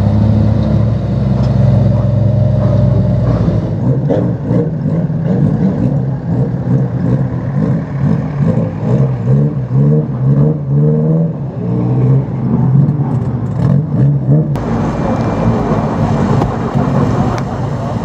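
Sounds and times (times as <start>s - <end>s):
racing car engine revving: 0.0s - 18.0s.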